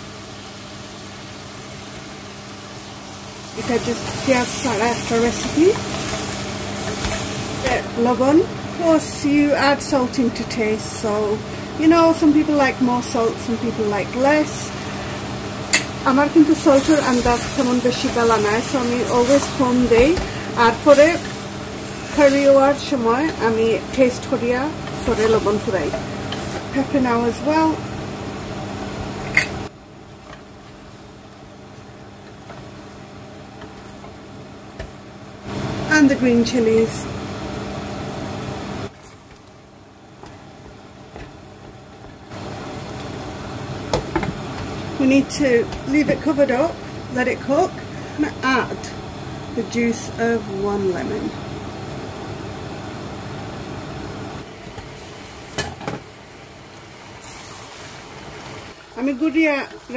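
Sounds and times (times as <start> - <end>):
curry hissing in a pan: 0.0 - 59.9
faint fan hum: 0.0 - 59.9.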